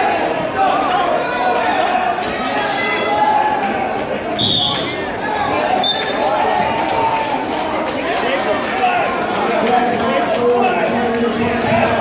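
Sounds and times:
referee's whistle blast: 4.4 - 4.9, 5.8 - 6.2.

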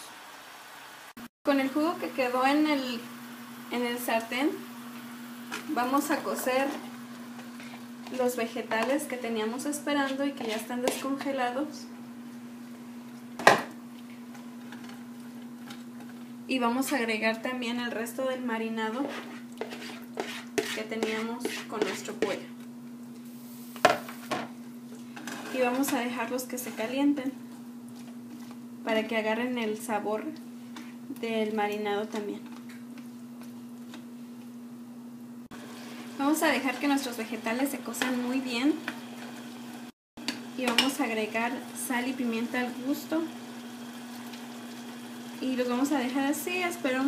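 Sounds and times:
vegetables sizzling in a pan: 0.0 - 16.2, 23.2 - 27.2, 35.6 - 47.0
vegetables stirred in pan: 2.8 - 11.4, 18.3 - 22.7.

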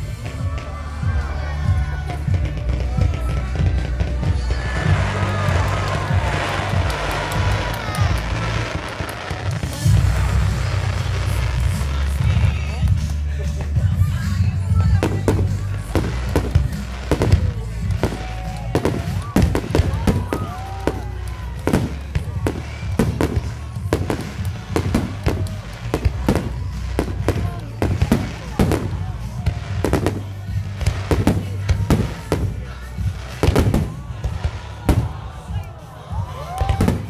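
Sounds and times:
fireworks bursting: 0.0 - 37.0
music playing: 0.0 - 37.0.

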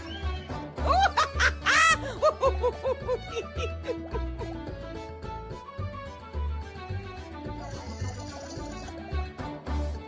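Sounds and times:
background music: 0.0 - 10.0
woman laughing: 0.8 - 4.6.

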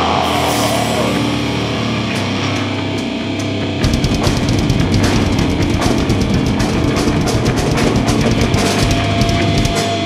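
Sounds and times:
rock band playing: 0.0 - 10.0
fast drum beat: 3.8 - 10.0.

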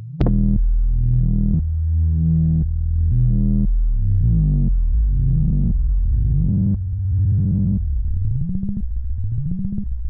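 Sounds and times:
synthesizer playing low sequenced notes: 0.0 - 10.0.

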